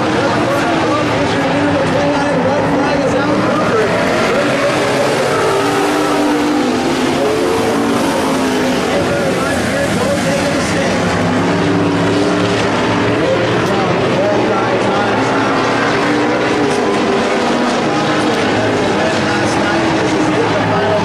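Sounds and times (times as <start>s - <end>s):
race car engines revving: 0.0s - 21.0s.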